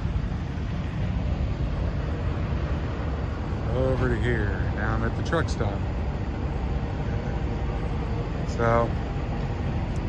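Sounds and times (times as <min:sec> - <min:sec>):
trucks idling low rumble: 0:00.0 - 0:10.0.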